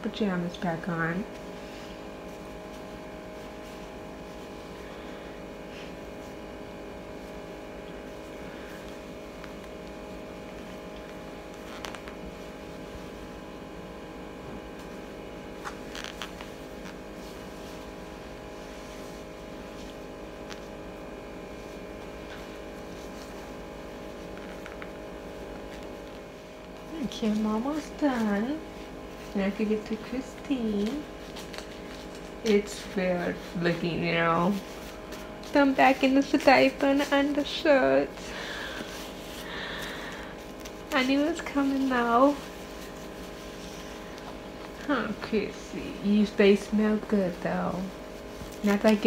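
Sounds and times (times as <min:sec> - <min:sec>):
machine hum: 0:00.0 - 0:49.0.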